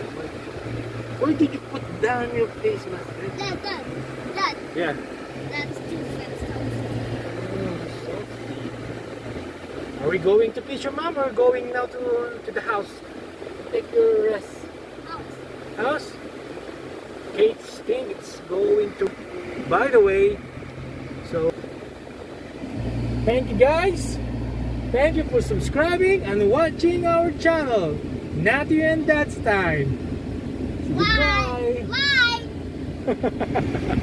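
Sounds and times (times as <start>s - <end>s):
car engine idling: 0.0s - 33.3s.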